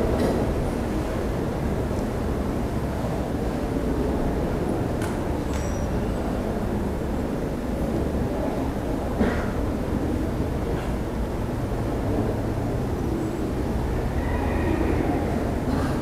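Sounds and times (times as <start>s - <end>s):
low rumble of room noise: 0.0s - 16.0s.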